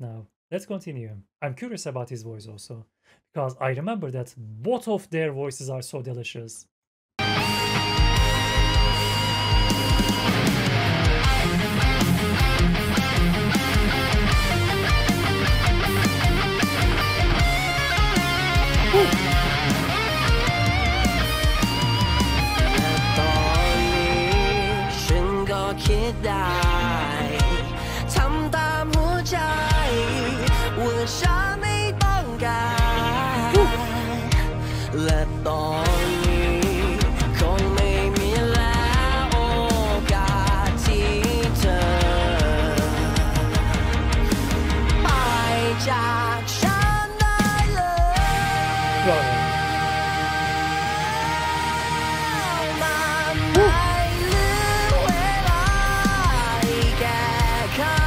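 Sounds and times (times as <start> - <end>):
electric guitar melody: 7.2 - 34.6, 48.2 - 58.0
rock band music: 7.2 - 58.0
man singing a belted note: 23.0 - 31.4, 32.1 - 34.2, 47.6 - 58.0.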